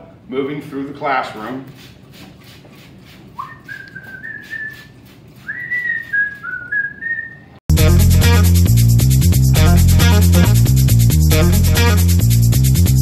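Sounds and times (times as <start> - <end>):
person whistling a tune: 3.4 - 4.9, 5.5 - 7.5
loud music with bass and guitar: 7.7 - 13.0.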